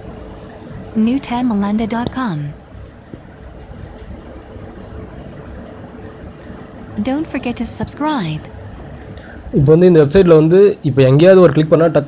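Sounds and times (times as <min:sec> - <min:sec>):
faint hum: 0:00.0 - 0:12.0
low rumbling background noise: 0:00.0 - 0:12.0.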